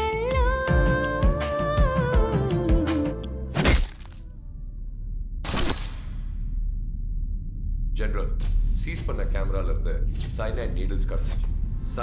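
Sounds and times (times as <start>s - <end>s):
low rumble: 4.2s - 12.0s.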